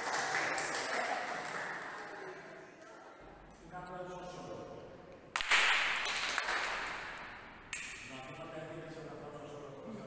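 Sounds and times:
group applauding: 0.0 - 2.6, 5.4 - 7.4.

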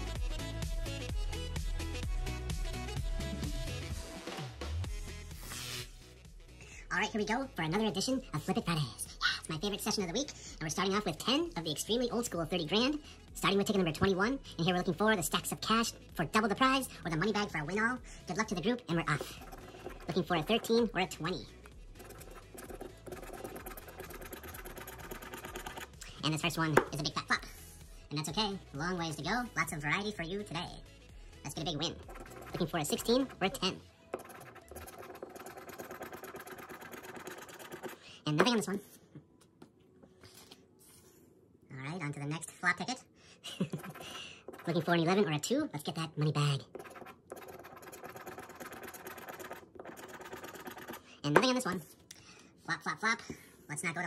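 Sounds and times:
scratcher scraping lottery ticket: 19.2 - 20.7, 22.0 - 25.9, 32.1 - 33.6, 46.7 - 51.1.

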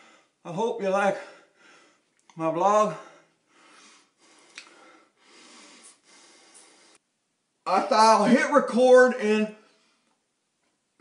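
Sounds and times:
man breathing faintly: 1.2 - 2.2, 2.9 - 7.1.

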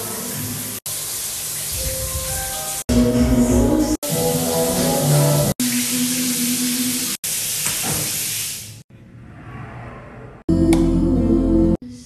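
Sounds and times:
shower water spraying: 0.0 - 2.9, 4.0 - 8.8.

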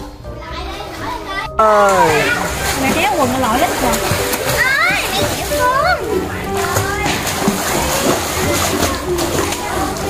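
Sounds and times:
water splashing: 1.6 - 10.0.

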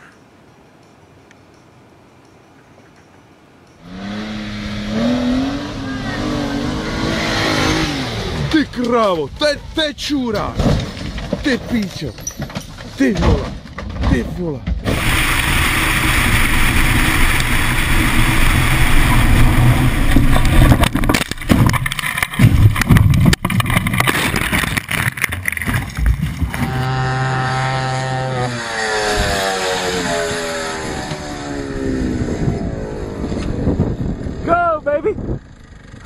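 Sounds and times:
car engine and road noise: 2.8 - 9.8, 14.6 - 36.0
dune buggy engine running: 3.8 - 9.8, 14.8 - 36.0
car crashing impacts: 10.4 - 11.7.

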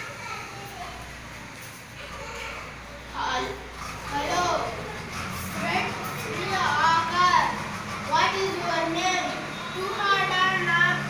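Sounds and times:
child speaking: 0.0 - 1.2, 2.0 - 11.0.

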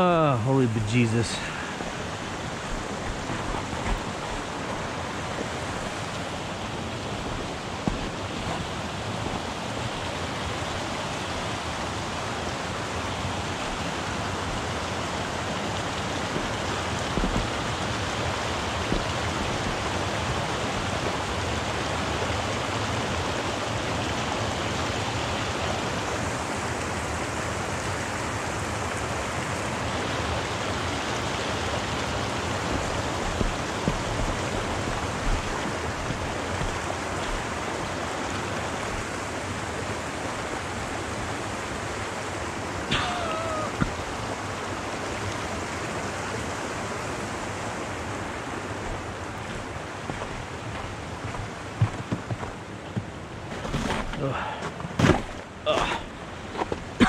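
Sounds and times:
shallow water rushing over rocks: 0.0 - 57.0.

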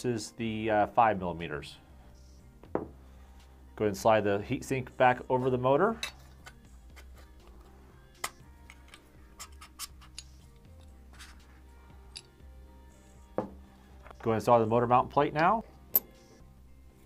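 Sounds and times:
quiet background music: 0.0 - 17.0.

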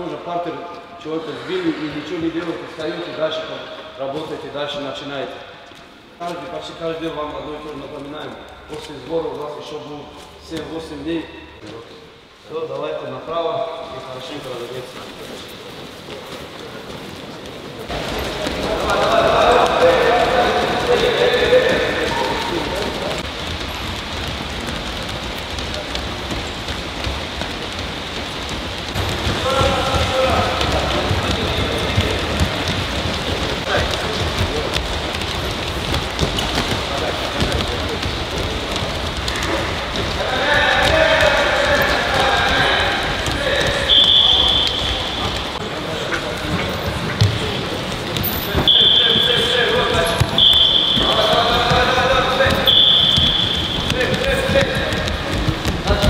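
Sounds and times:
voices calling out: 17.9 - 23.2, 39.3 - 55.2.

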